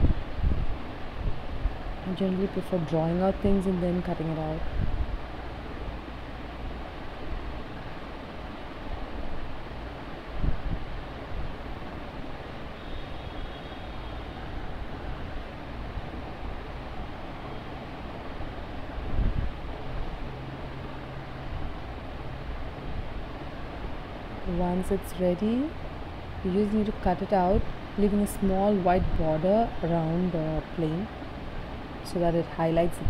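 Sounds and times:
background rumble and hiss: 0.0 - 12.8, 14.2 - 33.0.

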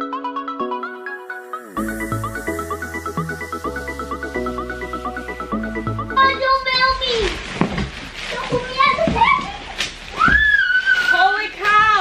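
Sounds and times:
plastic bag crinkling: 6.4 - 12.0.

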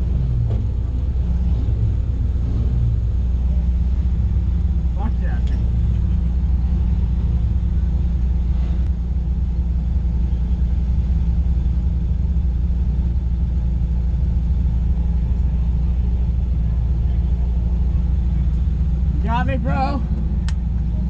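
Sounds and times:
car engine idling: 0.0 - 21.0.

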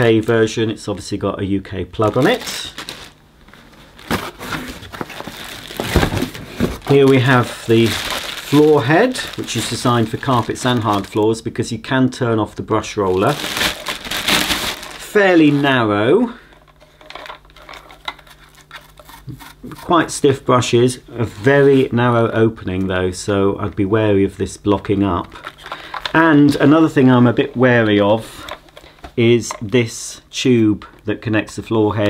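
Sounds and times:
plastic bag crinkling: 2.0 - 3.2, 3.9 - 11.4, 13.0 - 15.8.

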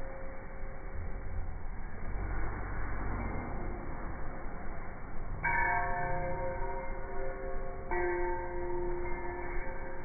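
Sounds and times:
bell-like chime ringing: 5.3 - 10.0.

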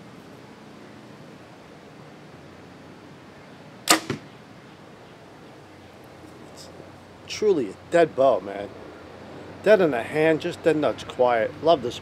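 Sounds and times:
bow string crack: 3.9 - 4.3.

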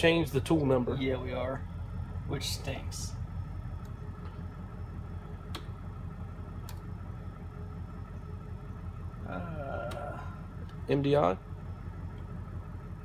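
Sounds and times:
shop machinery hum: 0.0 - 13.0.

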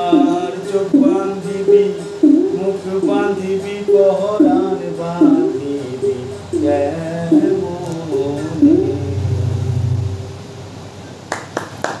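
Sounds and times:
person singing: 0.0 - 10.3
ektara ringing: 0.0 - 10.6
sharp claps or knocks: 11.3 - 12.0.

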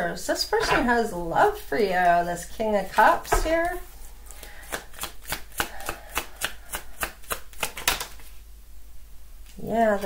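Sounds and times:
cards shuffled by hand: 4.7 - 8.4.

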